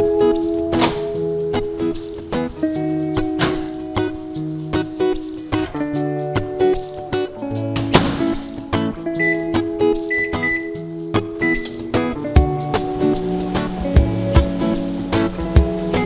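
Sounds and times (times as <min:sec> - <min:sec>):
background music with plucked guitar: 0:00.0 - 0:16.0
microwave keypad beeps: 0:09.2 - 0:10.8, 0:11.4 - 0:11.8.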